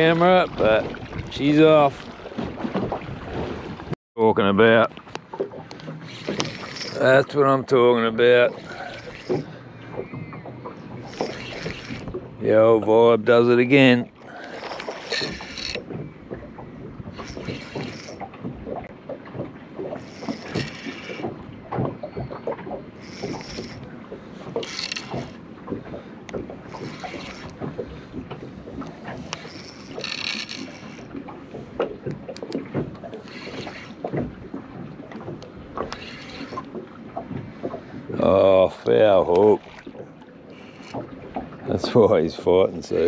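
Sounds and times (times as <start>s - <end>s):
water washing: 5.2s - 43.0s
fishing reel whirring: 5.8s - 7.3s, 8.3s - 12.2s, 14.2s - 16.1s, 17.0s - 18.3s, 19.8s - 21.4s, 22.2s - 25.4s, 26.6s - 27.8s, 29.0s - 31.3s, 32.4s - 34.2s, 35.8s - 36.7s, 40.5s - 41.1s.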